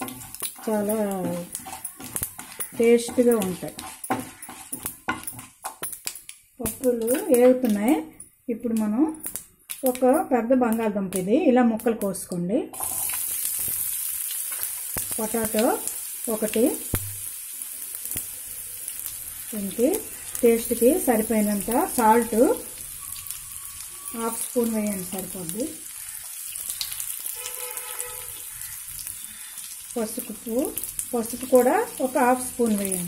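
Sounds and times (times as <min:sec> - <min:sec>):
potatoes sizzling in hot oil: 0:00.0 - 0:08.0, 0:12.7 - 0:33.0.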